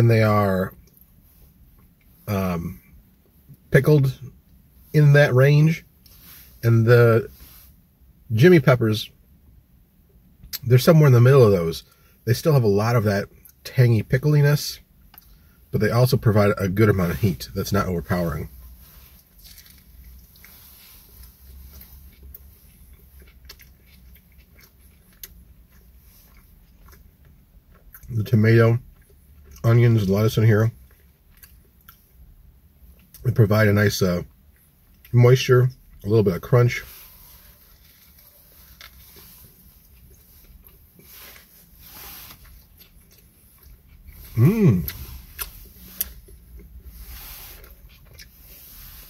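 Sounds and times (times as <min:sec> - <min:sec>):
low steady hum: 0:00.0 - 0:49.0
soft lettuce crunches: 0:16.2 - 0:32.0, 0:34.9 - 0:49.0
person chewing food: 0:18.1 - 0:28.1, 0:30.8 - 0:32.1, 0:36.8 - 0:49.0.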